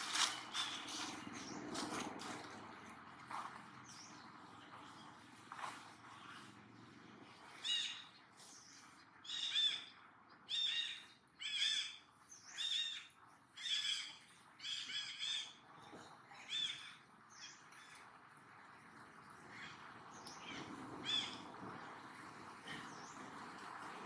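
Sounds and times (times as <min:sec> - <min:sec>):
bird calling: 0:07.4 - 0:08.2.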